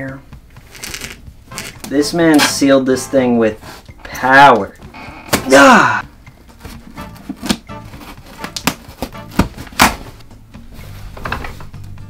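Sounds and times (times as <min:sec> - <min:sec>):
office chair squeaking: 0:00.5 - 0:02.5
knife cutting packing tape: 0:00.7 - 0:02.6, 0:06.7 - 0:10.0.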